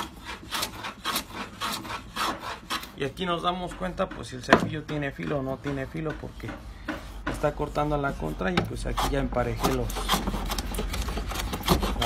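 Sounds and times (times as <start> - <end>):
hand plane shaving wood: 0.0 - 12.0.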